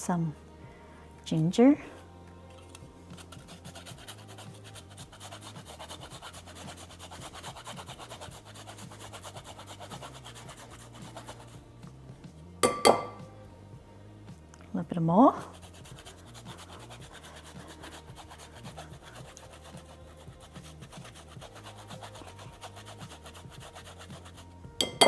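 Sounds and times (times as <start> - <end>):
ginger grated on metal grater: 3.1 - 11.2, 15.5 - 24.5.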